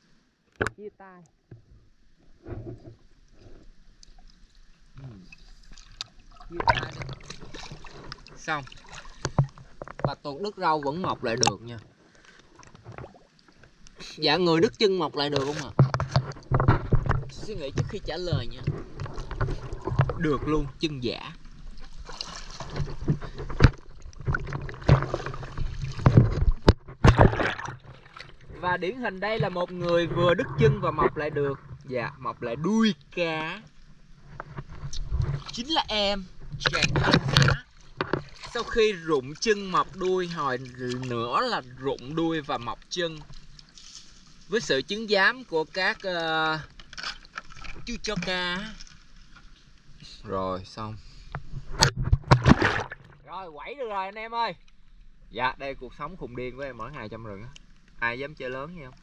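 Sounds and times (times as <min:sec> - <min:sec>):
river water splashing: 0:02.2 - 0:32.5, 0:33.1 - 0:50.0, 0:51.8 - 0:54.0.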